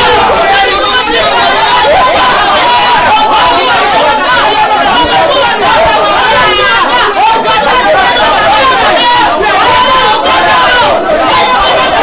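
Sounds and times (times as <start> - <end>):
people praying aloud: 0.0 - 12.0.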